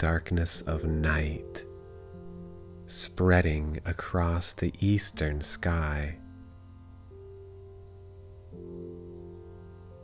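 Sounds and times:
crickets chirring: 0.0s - 10.0s
soft ambient music with drone: 0.0s - 10.0s.

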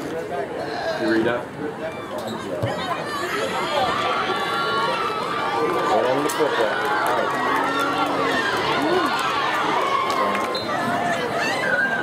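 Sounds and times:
crowd shouting and cheering: 1.8s - 12.0s.

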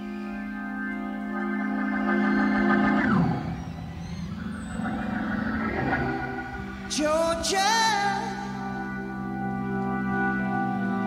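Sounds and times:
organ chord swooping down: 0.0s - 11.0s.

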